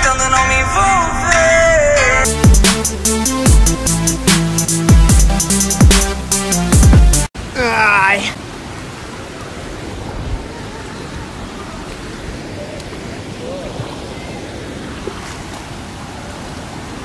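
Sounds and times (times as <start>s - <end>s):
stream rushing over rocks: 7.4s - 17.0s.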